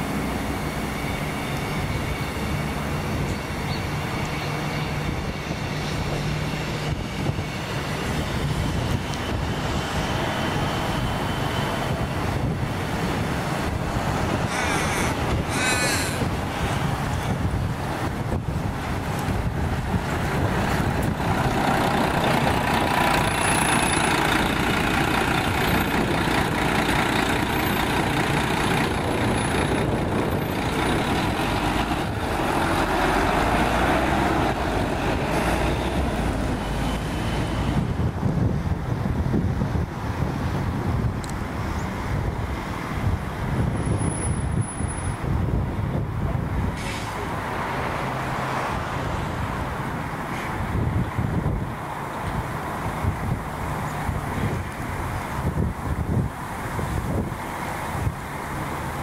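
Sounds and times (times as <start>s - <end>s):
bus engine pulling away: 0.0s - 59.0s.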